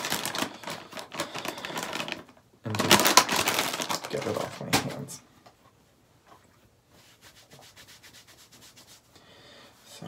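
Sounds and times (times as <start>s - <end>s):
makeup wipe rubbing on hands: 7.0s - 9.1s.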